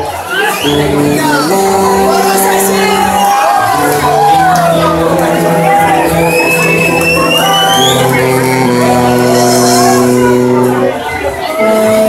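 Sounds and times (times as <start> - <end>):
brass band playing: 0.6 - 12.0
high tone sliding upward: 0.7 - 10.9.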